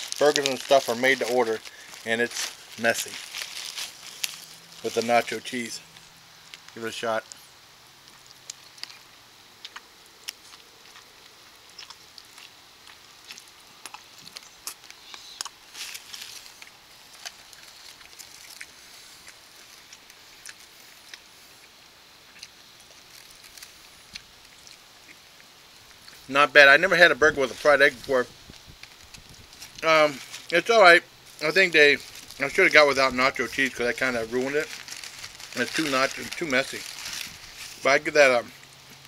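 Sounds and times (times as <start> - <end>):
foil crinkling: 0.0 - 7.5, 8.1 - 21.3, 22.8 - 24.8, 25.9 - 39.0
chewing: 0.0 - 26.3.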